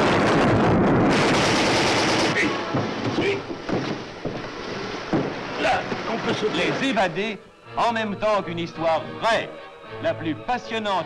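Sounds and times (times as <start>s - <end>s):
rapid automatic gunfire: 1.1s - 2.4s.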